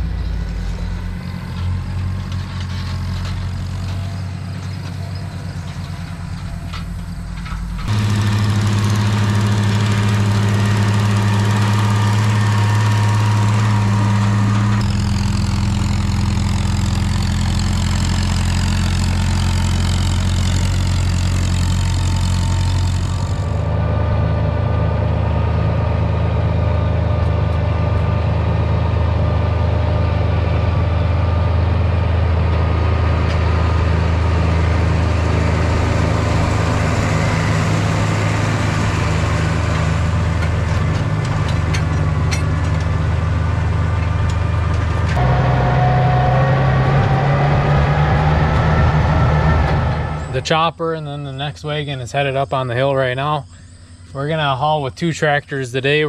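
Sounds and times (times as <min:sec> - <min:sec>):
tractor engines running: 0:00.0 - 0:56.0
tractor towing forage chopper: 0:00.0 - 0:56.0.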